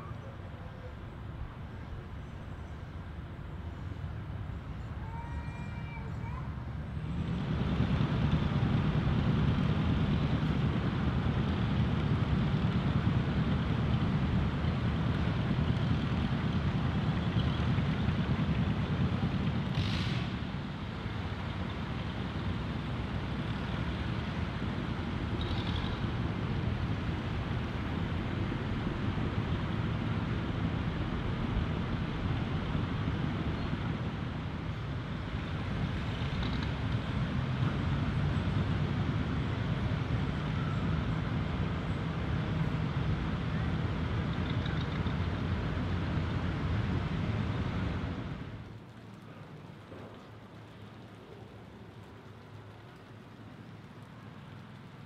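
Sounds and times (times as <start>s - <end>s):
distant tractor engines running: 0.0s - 55.0s
outdoor ambience: 0.0s - 55.0s
brief hiss: 19.8s - 20.4s.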